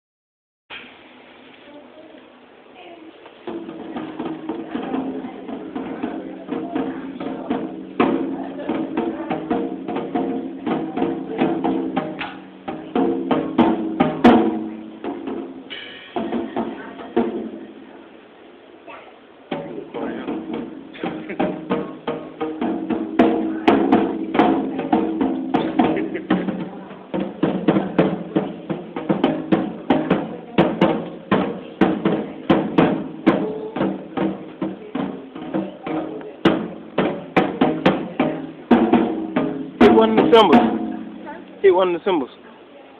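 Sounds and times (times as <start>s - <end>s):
child banging on drum kit: 3.4s - 18.0s, 19.5s - 42.2s.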